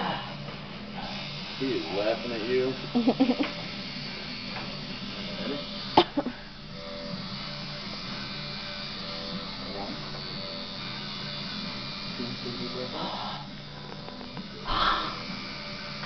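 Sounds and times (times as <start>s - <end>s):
background music: 0.0s - 16.0s
tattoo machine buzzing: 0.0s - 16.0s.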